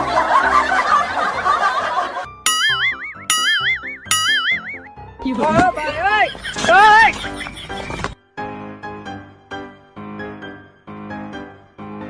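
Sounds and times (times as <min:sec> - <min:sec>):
low notes: 0:02.4 - 0:05.0
cartoon boing sound effect: 0:02.5 - 0:04.9.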